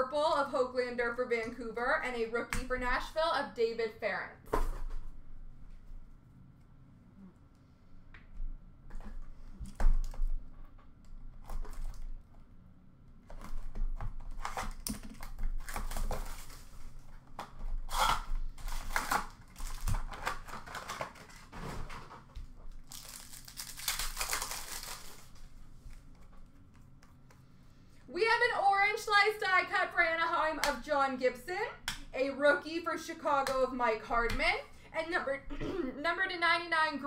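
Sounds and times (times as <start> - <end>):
plastic wrapping crinkling: 13.3 - 27.0
foil packs tearing: 13.4 - 17.0, 17.8 - 25.5.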